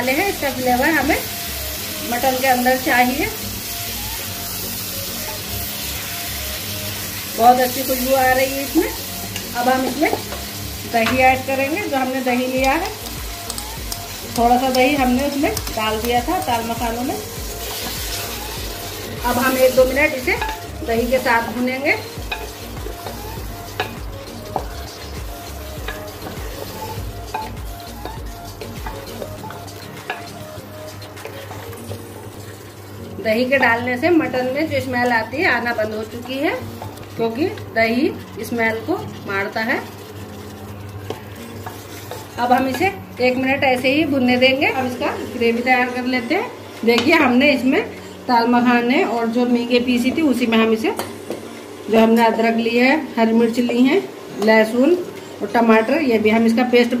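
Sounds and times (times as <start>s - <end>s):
meat sizzling in hot oil: 0.0s - 57.0s
spatula stirring in pot: 0.4s - 33.8s, 35.0s - 47.3s.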